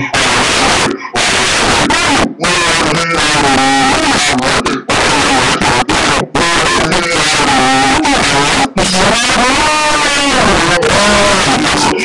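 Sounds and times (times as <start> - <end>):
pitched-down voices through speaker: 0.0 - 12.0.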